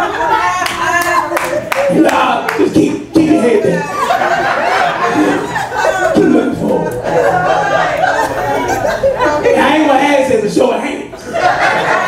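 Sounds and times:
congregation voices: 0:00.0 - 0:12.0.

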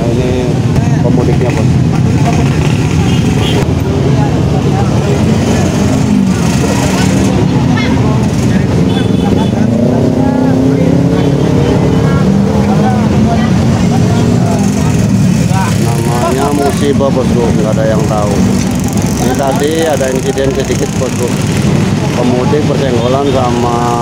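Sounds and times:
crowd of people talking: 0:00.0 - 0:24.0
traffic on busy highway: 0:00.0 - 0:24.0.

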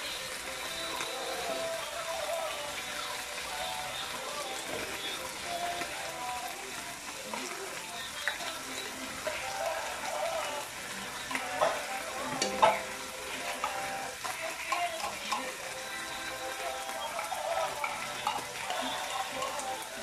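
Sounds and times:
food sizzling in a wok: 0:00.0 - 0:20.0.

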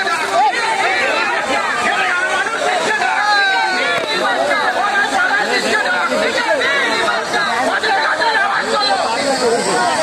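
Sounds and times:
crowd talking: 0:00.0 - 0:10.0.

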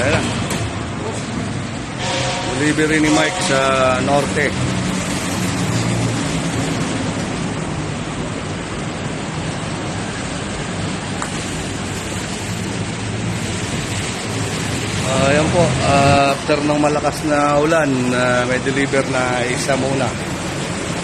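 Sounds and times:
heavy rain: 0:00.0 - 0:21.0.

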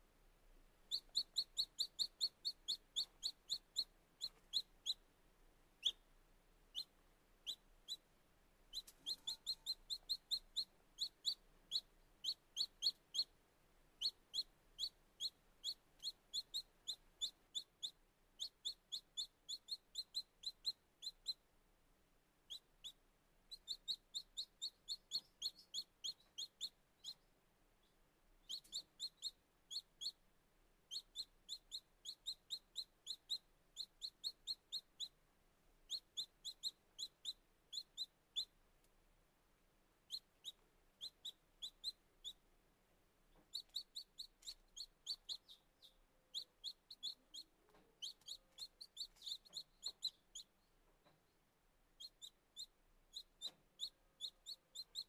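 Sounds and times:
baby chicks peeping: 0:00.8 - 0:05.1, 0:05.7 - 0:21.5, 0:22.4 - 0:38.6, 0:40.0 - 0:42.5, 0:43.2 - 0:55.0.

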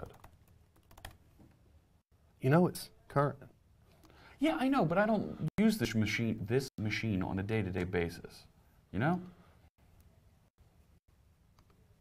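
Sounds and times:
typing on laptop keyboard: 0:00.0 - 0:01.2.

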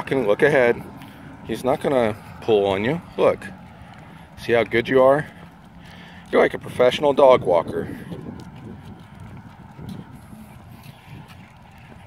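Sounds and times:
footsteps on concrete: 0:00.0 - 0:12.0.

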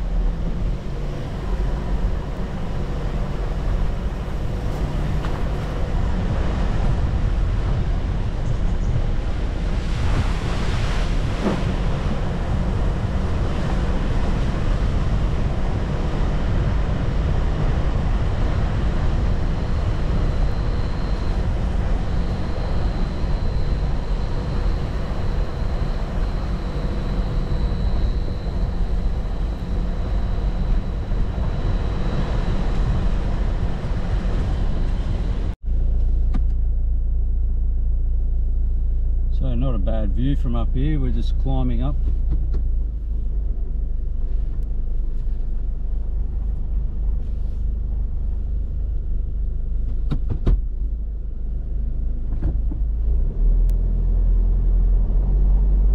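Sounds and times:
vehicle driving on gravel: 0:00.0 - 0:36.7
wind rumble on microphone: 0:00.0 - 0:39.4, 0:40.1 - 0:55.9
engine hum inside cabin: 0:00.0 - 0:55.9.

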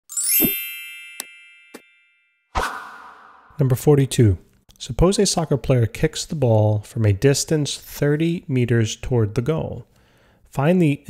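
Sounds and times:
bright chime with shimmer: 0:00.1 - 0:02.3.

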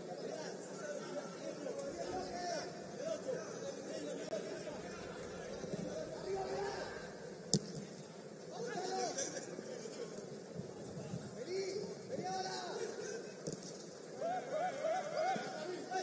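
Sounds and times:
football players shouting: 0:00.6 - 0:07.4, 0:14.1 - 0:16.0.

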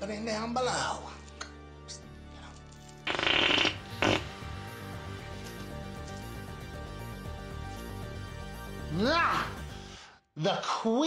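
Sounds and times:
background music: 0:00.0 - 0:11.0
comic fart sound: 0:03.0 - 0:04.5.

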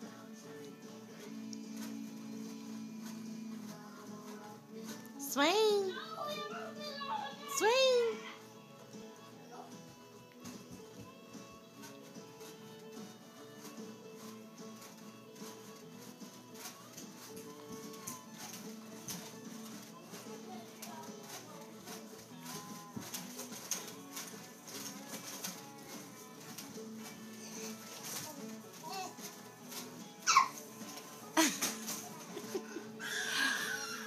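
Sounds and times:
faint background music: 0:00.0 - 0:34.0.

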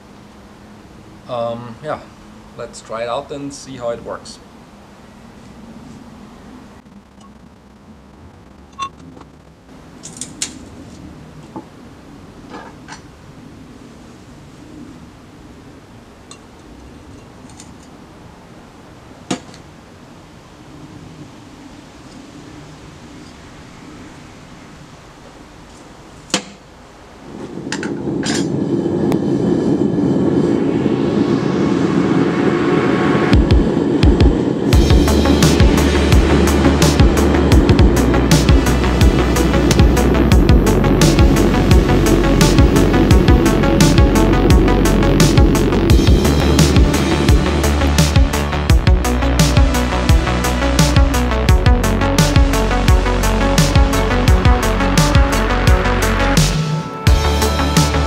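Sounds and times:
background music: 0:34.6 - 0:58.0.

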